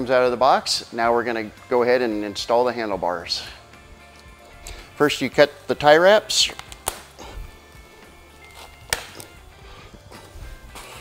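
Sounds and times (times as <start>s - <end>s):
faint background music: 0.0s - 11.0s
cutters snipping cable tie: 6.5s - 7.2s, 8.4s - 9.4s.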